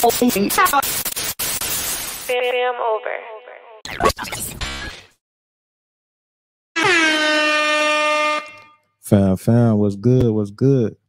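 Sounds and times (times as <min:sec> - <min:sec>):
air horn blast: 0:06.8 - 0:09.0.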